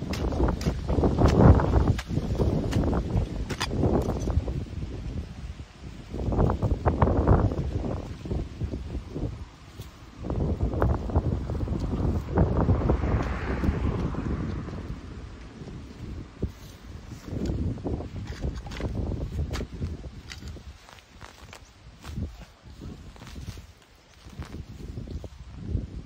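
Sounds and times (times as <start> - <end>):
grass and leaves rustling: 0.0 - 26.0
wind buffeting microphone: 0.0 - 26.0.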